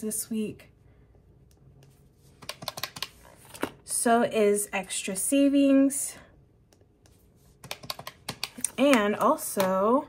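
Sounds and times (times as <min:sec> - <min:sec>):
calculator keys clicking: 0:02.4 - 0:03.2, 0:07.6 - 0:09.8.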